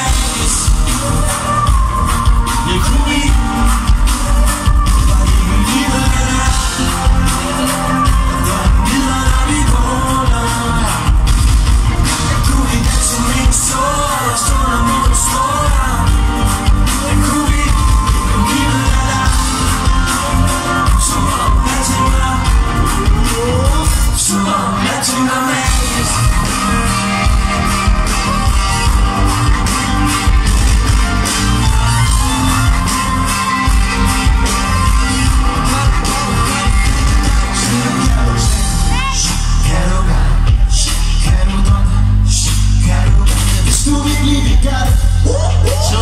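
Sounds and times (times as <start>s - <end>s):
heavy bass beat: 0.0s - 46.0s
loud live pop music: 0.0s - 46.0s
voices singing: 0.0s - 46.0s.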